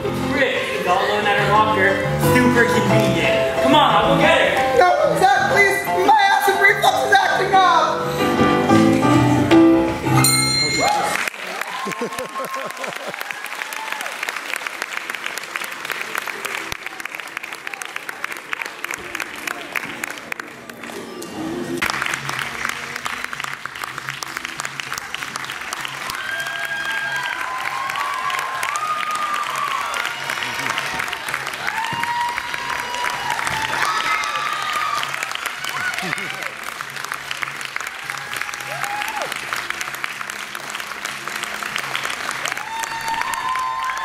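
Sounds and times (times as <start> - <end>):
audience clapping: 10.6 - 44.0
cheering shouts and whoops: 11.4 - 14.3, 26.1 - 36.6, 37.9 - 39.5, 42.4 - 44.0.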